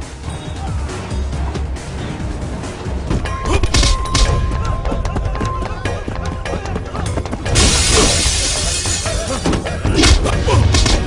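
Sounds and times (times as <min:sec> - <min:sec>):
dramatic film score: 0:00.0 - 0:11.0
glass shattering: 0:07.6 - 0:09.5.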